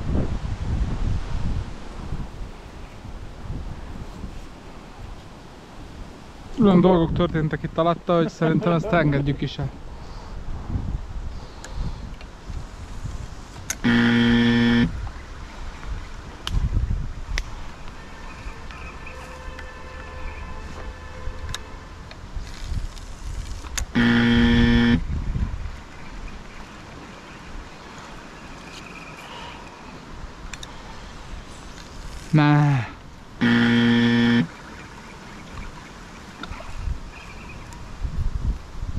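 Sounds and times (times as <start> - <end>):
wind rumbling on microphone: 0.0 - 8.1, 9.0 - 18.7, 20.3 - 28.8, 33.0 - 38.9
buzzing horn blasts: 13.8 - 15.0, 17.9 - 22.0, 23.9 - 25.0, 33.4 - 34.8.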